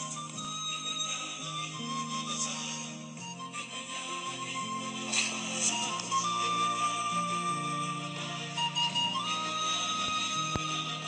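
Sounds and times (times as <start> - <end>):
flute-like woodwind melody: 0.0 - 11.0
low sustained orchestral notes: 0.0 - 11.0.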